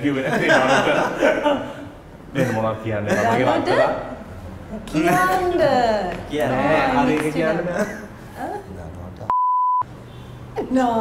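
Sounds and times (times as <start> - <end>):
censor bleep tone: 9.3 - 9.9.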